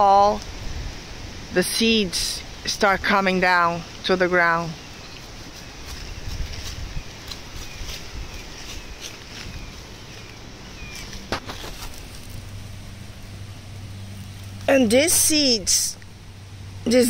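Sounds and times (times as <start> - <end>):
low steady hum: 0.0 - 17.0
wind: 0.0 - 17.0
rustling: 5.1 - 15.3.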